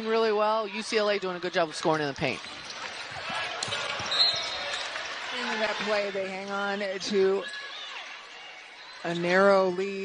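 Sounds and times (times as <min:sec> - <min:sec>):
arena crowd noise: 0:00.0 - 0:10.0
shoes squeaking: 0:00.8 - 0:08.4.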